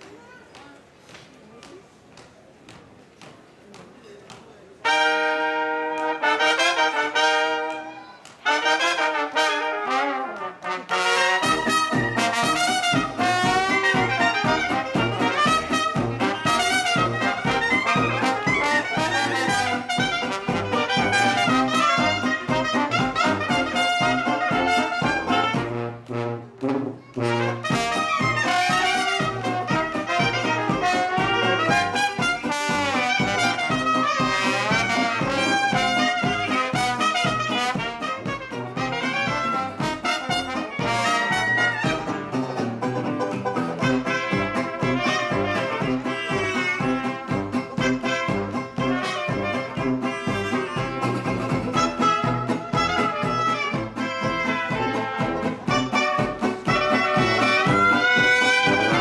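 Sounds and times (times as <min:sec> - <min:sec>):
jazz band playing: 0:04.8 - 0:59.0
sousaphone and banjo beat: 0:10.6 - 0:26.3, 0:27.2 - 0:59.0.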